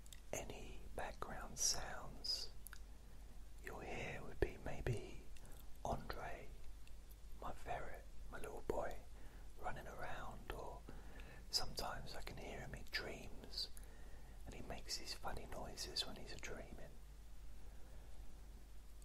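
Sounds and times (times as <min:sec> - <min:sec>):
man whispering: 0:00.1 - 0:02.8, 0:03.6 - 0:06.6, 0:07.4 - 0:13.8, 0:14.4 - 0:17.0.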